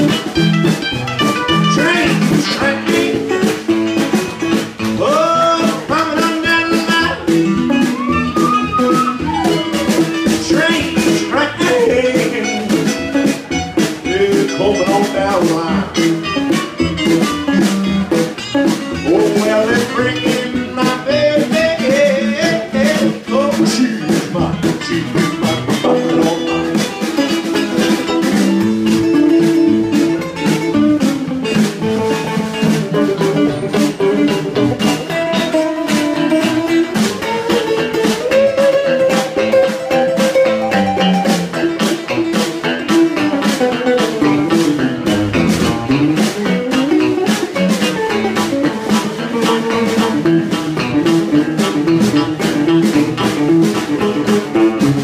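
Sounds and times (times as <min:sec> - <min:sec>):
electric guitar lead with bent notes: 0:00.0 - 0:55.0
snare drum beat: 0:00.0 - 0:55.0
strummed acoustic guitar: 0:00.0 - 0:55.0.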